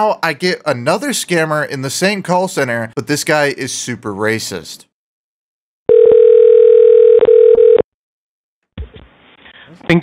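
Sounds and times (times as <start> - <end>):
telephone ringback tone: 5.9 - 7.8.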